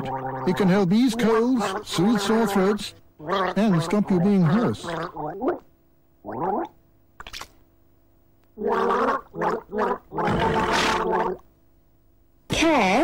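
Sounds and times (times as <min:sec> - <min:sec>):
throaty gargling with voice: 0:00.0 - 0:05.6, 0:06.2 - 0:06.8, 0:08.6 - 0:11.4.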